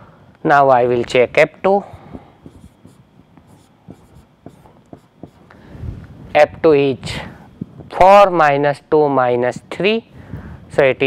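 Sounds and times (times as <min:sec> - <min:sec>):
marker pen writing on whiteboard: 0:01.8 - 0:05.5.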